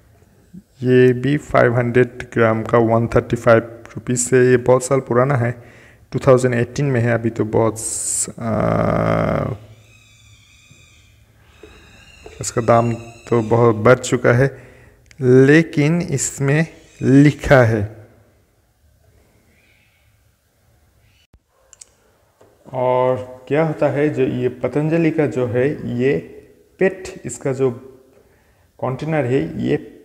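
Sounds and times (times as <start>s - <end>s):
faint high hum: 0.0s - 30.0s
man speaking: 0.5s - 9.7s, 12.4s - 14.6s, 15.2s - 18.0s, 22.7s - 27.9s, 28.8s - 30.0s
man saying aah: 7.8s - 9.7s, 12.4s - 14.6s.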